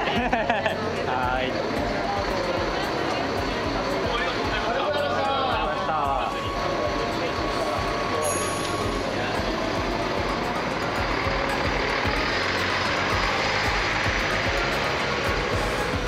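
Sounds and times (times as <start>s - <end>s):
bus diesel engine driving past: 0.0s - 16.0s.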